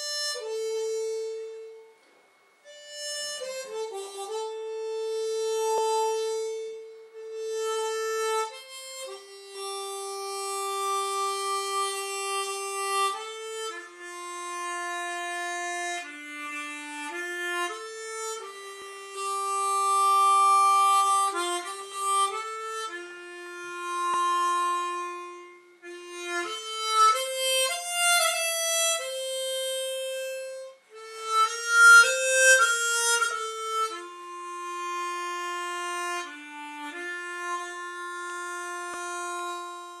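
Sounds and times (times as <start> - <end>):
harmonica melody: 0.0 - 40.0.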